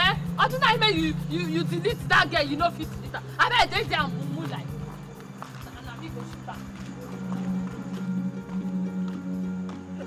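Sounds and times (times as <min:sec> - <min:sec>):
film music with held low tone: 0:00.0 - 0:10.0
woman's running footsteps: 0:03.8 - 0:10.0.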